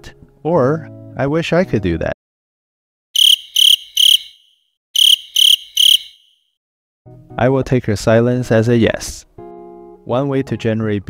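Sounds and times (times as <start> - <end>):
cricket chirping: 3.2 - 6.4.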